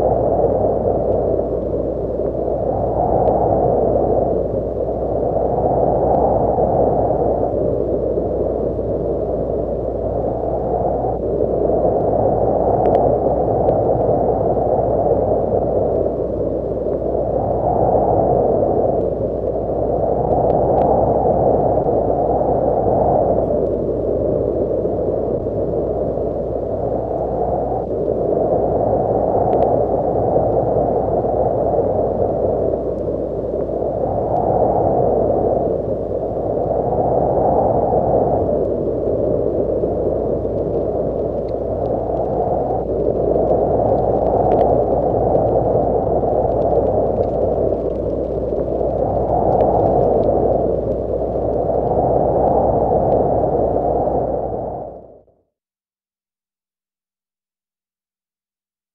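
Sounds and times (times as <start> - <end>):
low rush of wind: 0.0 - 55.4.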